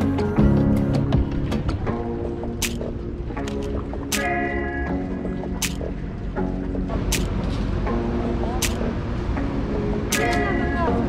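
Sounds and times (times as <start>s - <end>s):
low rumble of traffic: 1.8s - 11.0s
sharp click: 2.6s - 4.4s, 5.6s - 5.9s, 7.1s - 7.5s, 8.6s - 8.9s, 10.1s - 10.5s
passers-by's voices: 7.0s - 11.0s.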